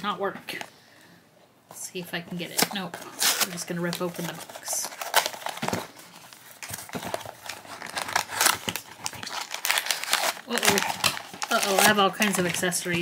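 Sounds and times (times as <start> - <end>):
foil bag crinkling: 2.6 - 13.0
cardboard box tearing: 4.4 - 5.9, 6.6 - 12.0.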